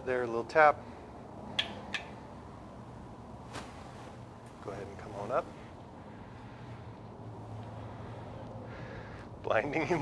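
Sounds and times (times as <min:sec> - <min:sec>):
sharp instrument clicks: 0:01.6 - 0:02.2.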